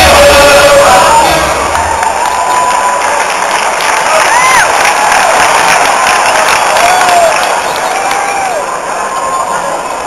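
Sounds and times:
crowd cheering and clapping: 0:00.0 - 0:10.0.

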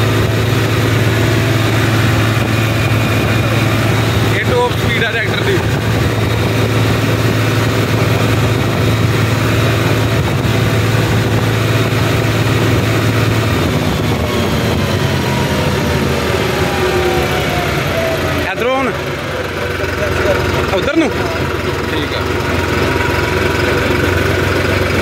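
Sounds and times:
tractor diesel engine running: 0:00.0 - 0:25.0
wind and road noise: 0:00.0 - 0:25.0.

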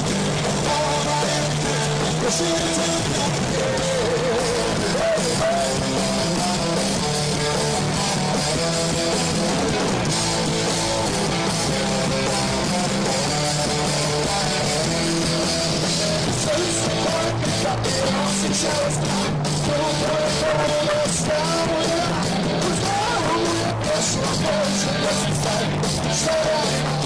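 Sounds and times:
distorted electric guitar: 0:00.0 - 0:27.0
live metal band playing: 0:00.0 - 0:27.0.

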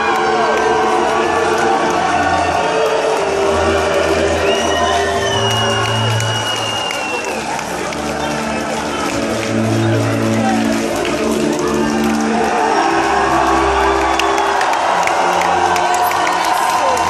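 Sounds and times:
crowd cheering and whistling: 0:00.0 - 0:17.0
shrill held whistle: 0:04.4 - 0:07.4.

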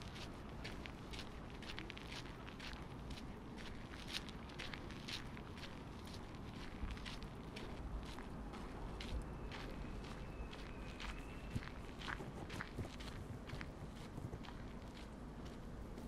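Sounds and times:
footsteps on dirt path: 0:00.0 - 0:16.0
low background rumble: 0:00.0 - 0:16.0.

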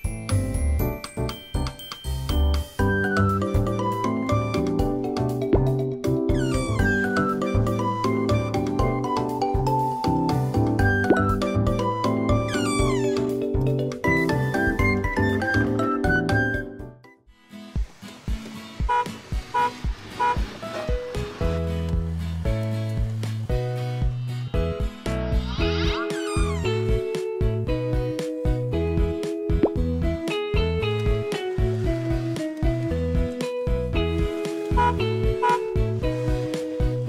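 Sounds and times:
children's music: 0:00.0 - 0:17.5, 0:18.5 - 0:37.0
cat-like meow: 0:12.5 - 0:13.3, 0:25.6 - 0:26.8
downward sliding sound effect: 0:12.5 - 0:13.3, 0:24.1 - 0:27.0.

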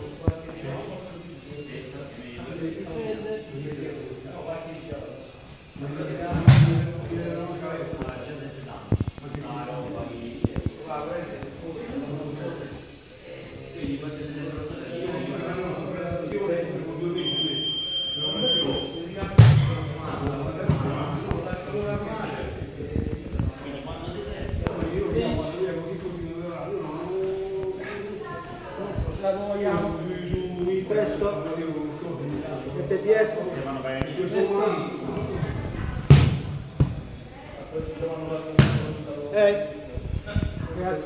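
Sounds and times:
voices: 0:00.0 - 0:41.0.

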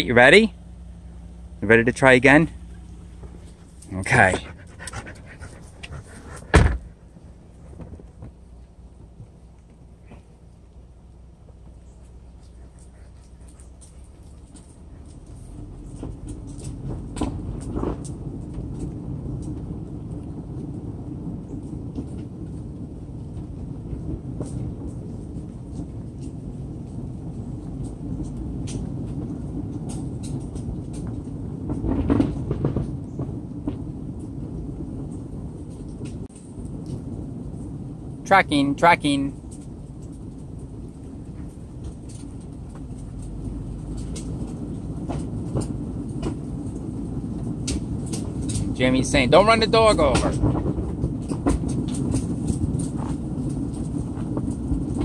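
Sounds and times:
car rolling on pavement: 0:00.0 - 0:55.0.

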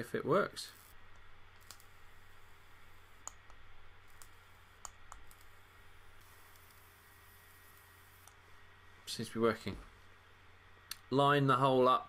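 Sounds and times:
faint e-cigarette clicks: 0:01.6 - 0:01.9, 0:03.2 - 0:05.6, 0:06.2 - 0:06.9.

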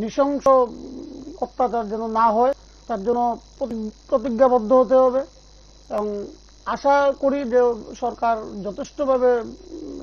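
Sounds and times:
man talking: 0:00.0 - 0:05.3, 0:05.9 - 0:09.7.

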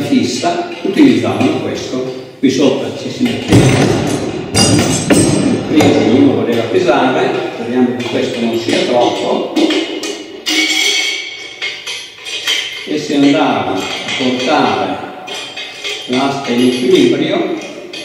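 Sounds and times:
person speaking: 0:00.0 - 0:03.6, 0:05.5 - 0:09.9, 0:12.8 - 0:15.3
metal clinks of scale chains: 0:10.5 - 0:18.0.

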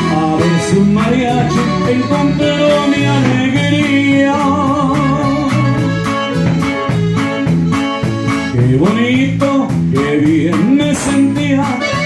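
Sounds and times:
button accordion: 0:00.0 - 0:09.6, 0:10.2 - 0:12.0
drum kit with cymbal hits: 0:00.0 - 0:12.0
electric bass: 0:00.0 - 0:12.0
twelve-string guitar: 0:00.0 - 0:12.0.

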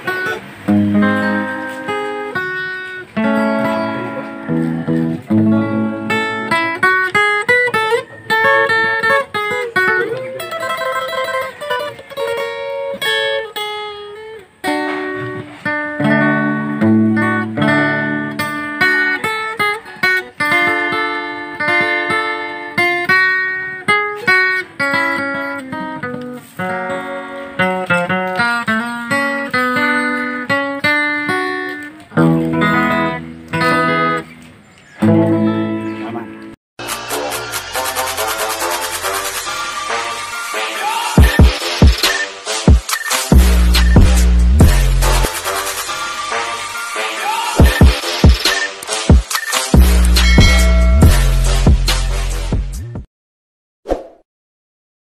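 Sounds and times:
acoustic guitar: 0:00.0 - 0:52.9.

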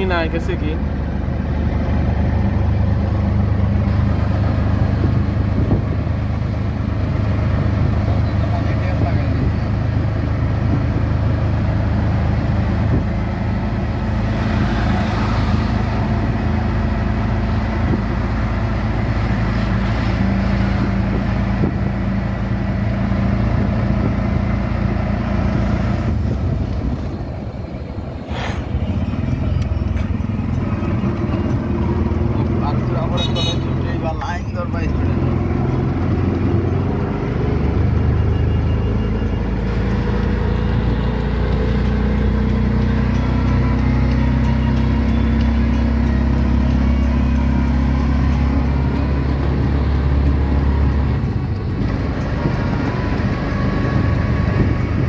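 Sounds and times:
auto-rickshaw engine running: 0:00.0 - 0:55.0
road noise: 0:00.0 - 0:55.0.

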